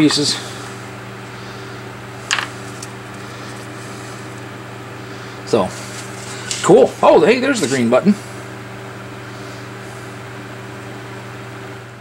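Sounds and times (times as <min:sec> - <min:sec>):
steady low hum: 0:00.0 - 0:12.0
small parts clacking on workbench: 0:02.3 - 0:02.5.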